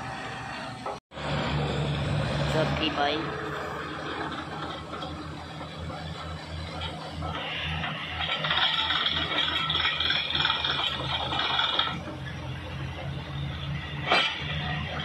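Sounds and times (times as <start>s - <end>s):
drilling rig engine droning: 0.0s - 15.0s.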